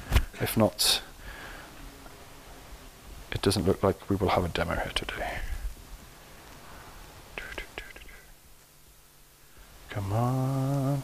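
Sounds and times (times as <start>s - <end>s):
man whispering: 3.4s - 5.7s, 7.3s - 8.4s.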